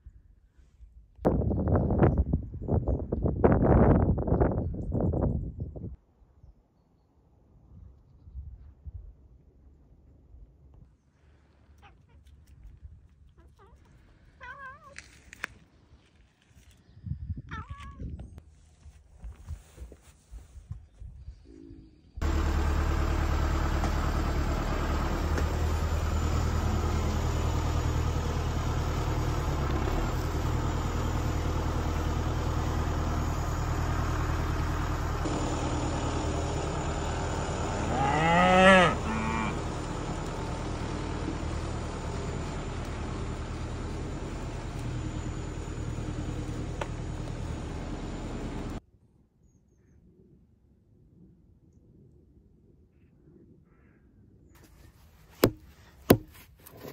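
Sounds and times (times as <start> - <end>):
engine running: 22.2 - 48.8
cow mooing: 37.8 - 39.7.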